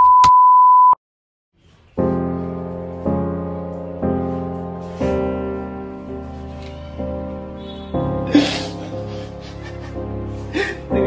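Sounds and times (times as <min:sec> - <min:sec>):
high electronic beep: 0:00.0 - 0:01.0.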